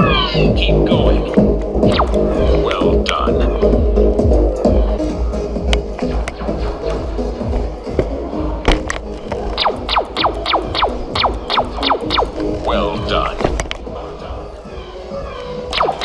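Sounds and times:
arena music with deep bass: 0.0s - 16.0s
laser tag gun zaps: 9.6s - 12.4s, 15.7s - 16.0s.

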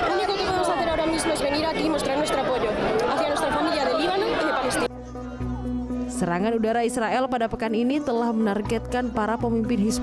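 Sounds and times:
crowd shouting and chanting: 0.0s - 6.2s.

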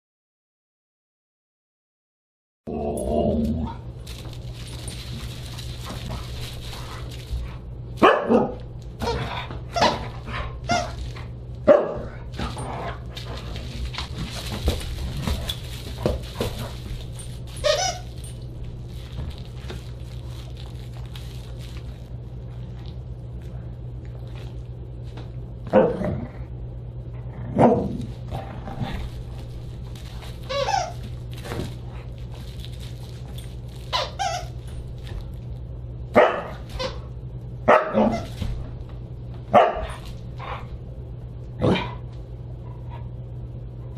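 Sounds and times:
dog barking and yipping: 8.0s - 8.6s, 11.7s - 12.2s, 36.2s - 36.6s, 37.7s - 38.2s, 39.5s - 40.0s.

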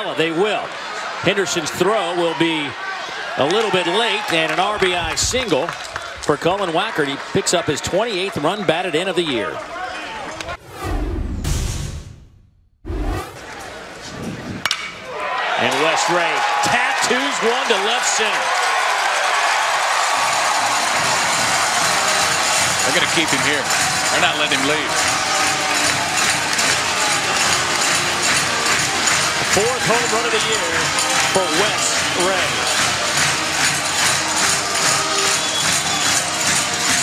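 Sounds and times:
ballpark crowd ambience: 0.0s - 10.6s, 13.4s - 37.0s
swoosh over deep boom: 10.6s - 13.4s
metal bat cracking against ball: 14.6s - 15.1s.

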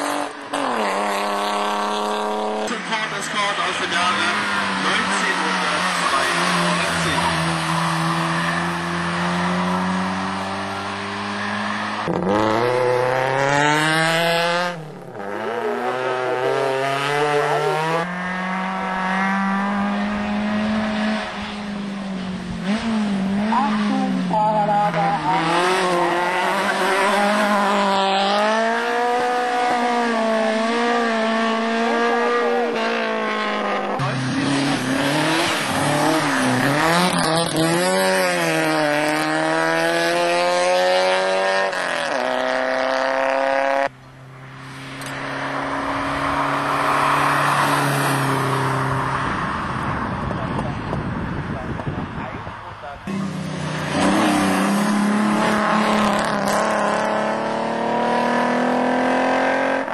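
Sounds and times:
racing car engine at high revs: 0.0s - 59.9s.

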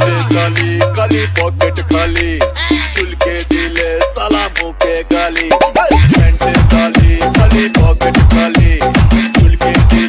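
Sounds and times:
heavy electronic bass beat: 0.0s - 10.0s
sung vocal line: 0.0s - 10.0s.

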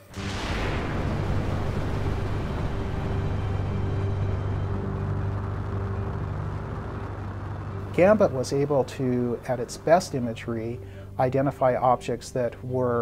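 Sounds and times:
rocket lifting off roar: 0.0s - 11.1s.

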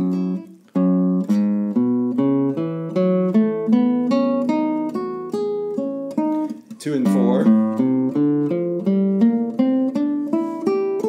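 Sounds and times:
nylon-string guitar notes: 0.0s - 11.0s.

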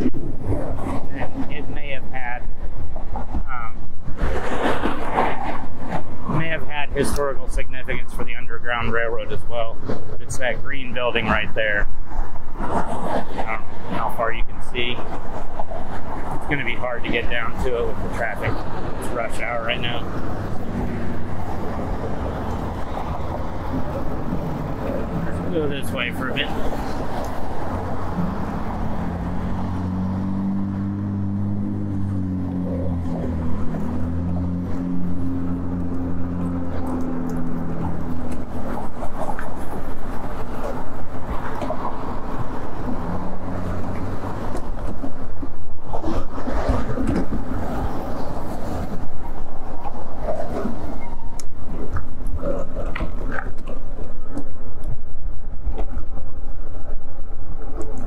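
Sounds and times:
low engine hum: 0.0s - 58.0s
road traffic passing: 0.0s - 58.0s
wind noise on microphone: 0.0s - 58.0s.

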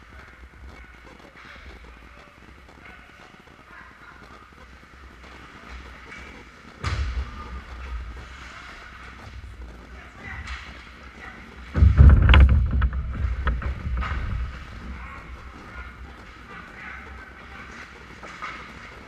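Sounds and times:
heavy rumble and clatter against net: 5.2s - 19.0s.

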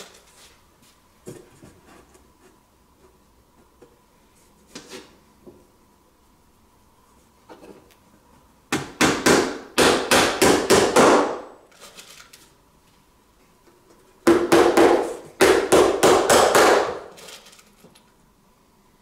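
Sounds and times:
hammer nailing wood: 8.7s - 11.5s, 14.2s - 17.1s.

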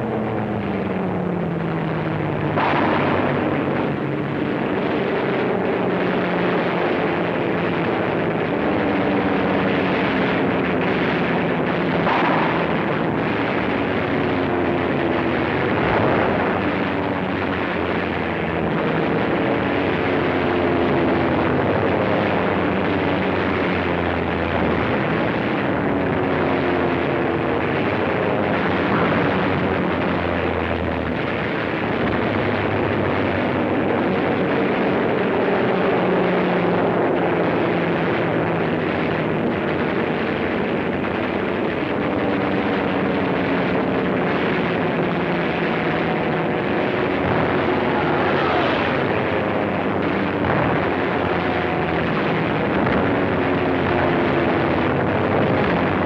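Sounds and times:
propeller plane engines droning: 0.0s - 56.0s.

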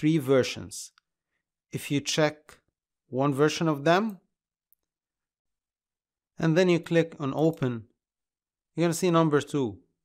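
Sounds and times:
person speaking: 1.7s - 4.4s, 6.4s - 8.0s.

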